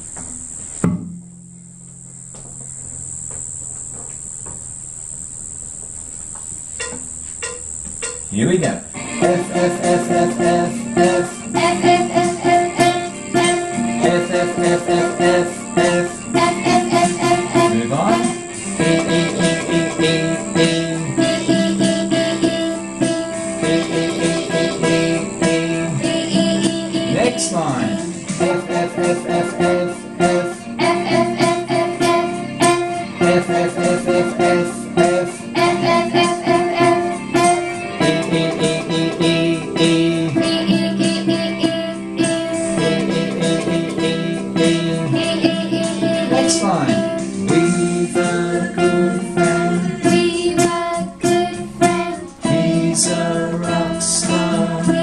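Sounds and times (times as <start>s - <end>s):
high-pitched whine: 0.0s - 55.0s
low sustained backing track notes: 0.0s - 55.0s
sharp click: 6.4s - 8.4s
voices singing: 7.4s - 55.0s.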